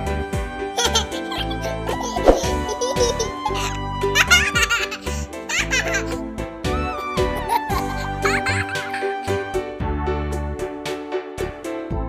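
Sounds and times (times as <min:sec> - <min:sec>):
children's music: 0:00.0 - 0:12.0
baby giggling: 0:00.8 - 0:06.2.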